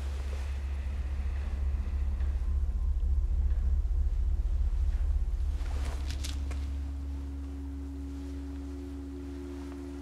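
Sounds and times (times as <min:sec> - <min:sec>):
low synth drone: 0:00.0 - 0:10.0.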